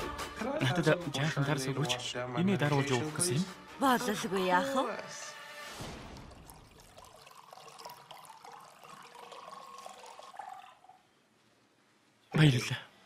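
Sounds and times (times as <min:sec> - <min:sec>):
wine pouring into glass: 0:06.2 - 0:11.1.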